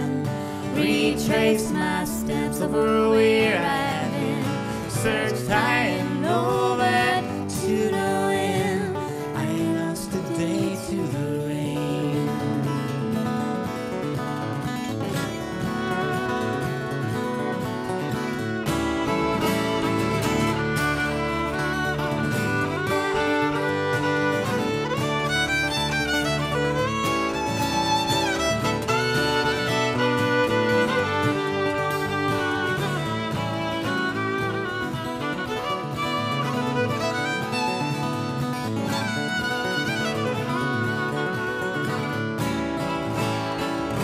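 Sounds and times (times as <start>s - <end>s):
acoustic guitar accompaniment: 0.0s - 44.0s
fiddle playing: 0.0s - 44.0s.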